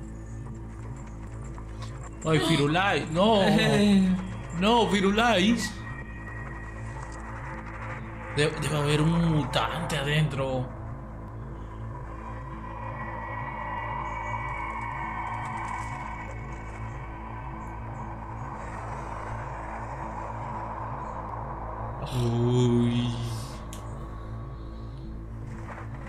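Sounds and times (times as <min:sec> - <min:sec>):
background music with low pulse: 0:00.0 - 0:26.0
brief voice: 0:02.3 - 0:02.8.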